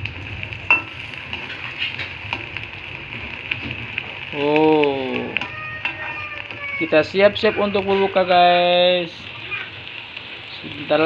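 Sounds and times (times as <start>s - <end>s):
food sizzling in hot oil: 0.0s - 11.0s
oil crackles: 0.0s - 11.0s.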